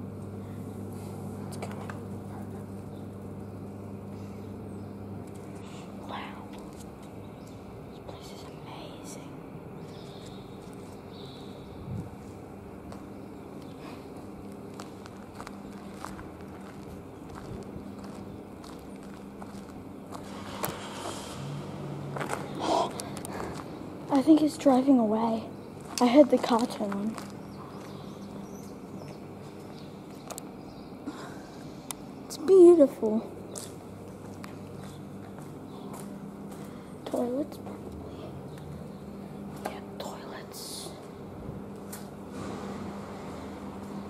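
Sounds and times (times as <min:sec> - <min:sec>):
footsteps on gritty concrete: 0:12.2 - 0:21.2, 0:22.2 - 0:23.8, 0:25.8 - 0:28.0, 0:33.5 - 0:36.8.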